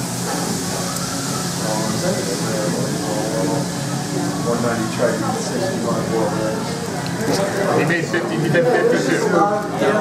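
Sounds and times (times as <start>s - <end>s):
high room hiss: 0.0s - 10.0s
people chattering: 0.5s - 10.0s.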